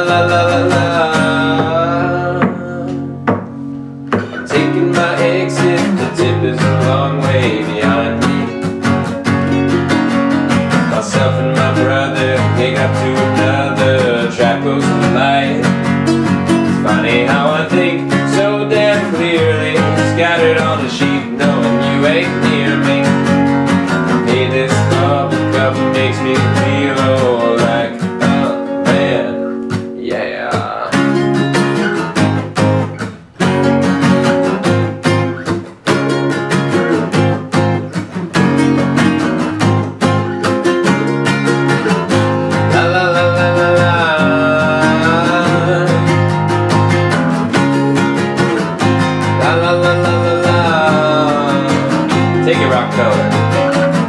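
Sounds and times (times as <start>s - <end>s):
acoustic guitar playing: 0.0s - 54.0s.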